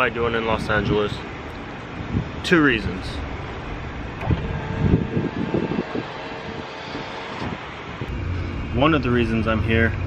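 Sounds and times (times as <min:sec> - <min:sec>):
vehicle engine running: 0:01.3 - 0:10.0.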